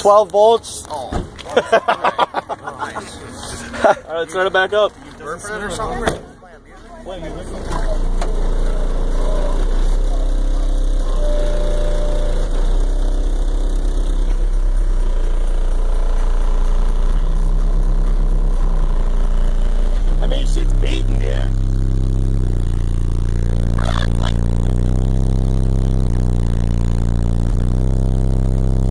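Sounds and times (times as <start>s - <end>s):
subwoofer playing bass-heavy music: 7.0s - 28.9s.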